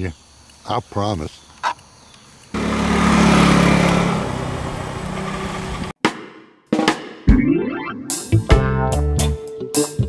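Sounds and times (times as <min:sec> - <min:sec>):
vehicle engine running: 0:02.6 - 0:05.9.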